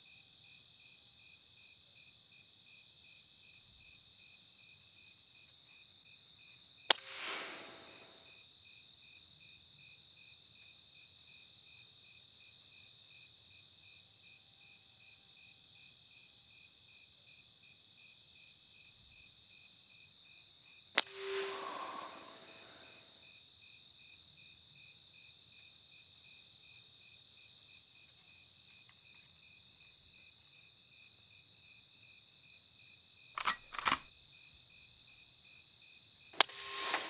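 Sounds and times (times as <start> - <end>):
crickets chirping: 0.0 - 37.0
air rifle shot: 6.9 - 8.2
brief soft noise: 21.0 - 23.0.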